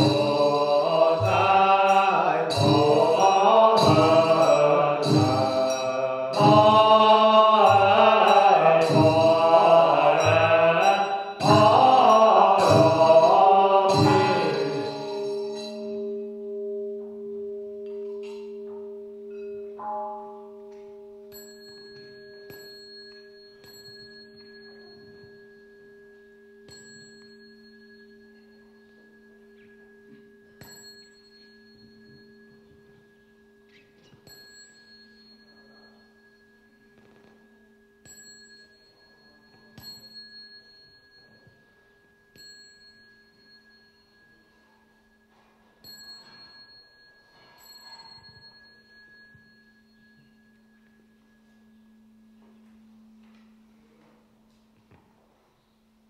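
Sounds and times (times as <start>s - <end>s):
high metallic chinks: 0.0s - 54.0s
bowl bell ringing: 0.0s - 55.0s.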